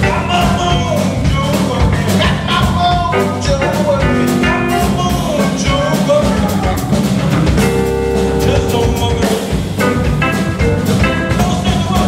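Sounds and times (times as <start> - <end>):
person singing: 0.0 - 7.2, 8.2 - 9.9, 11.0 - 12.0
drum kit: 0.0 - 12.0
electric bass: 0.0 - 12.0
keyboard: 0.0 - 12.0
electric guitar: 3.1 - 12.0.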